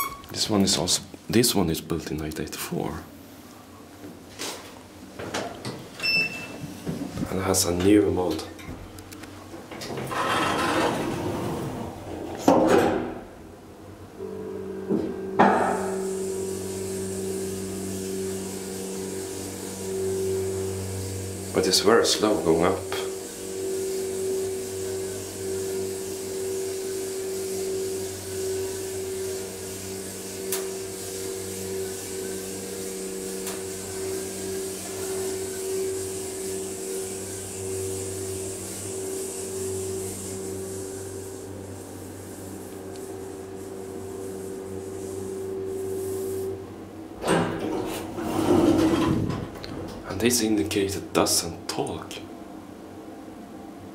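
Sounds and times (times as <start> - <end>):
hydraulic pump hum: 14.0 - 50.0
high hiss: 14.7 - 47.1.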